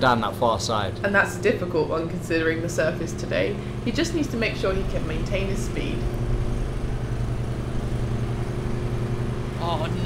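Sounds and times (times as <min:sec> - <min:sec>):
ride-on lawnmower engine running: 0:00.0 - 0:10.0.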